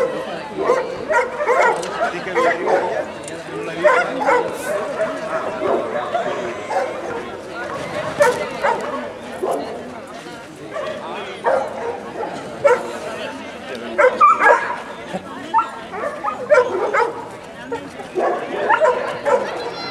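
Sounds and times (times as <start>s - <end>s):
people's voices: 0.0s - 19.9s.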